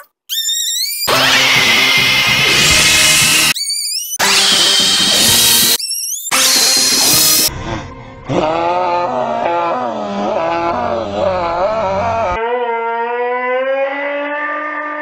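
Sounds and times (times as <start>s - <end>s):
man screaming: 8.3s - 12.4s.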